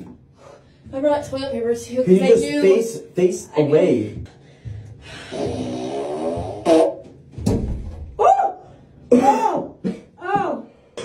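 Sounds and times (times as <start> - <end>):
buzzing fart sound: 5.2 - 7.4.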